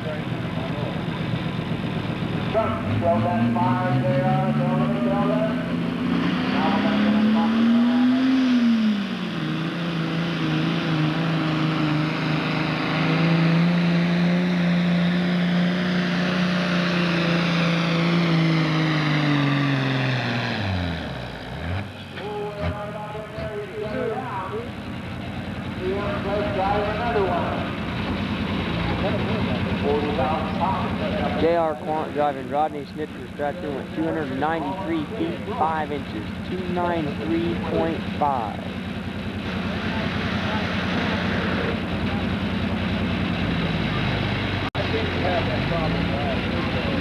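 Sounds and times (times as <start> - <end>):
diesel tractor engine under load: 0.0 - 47.0.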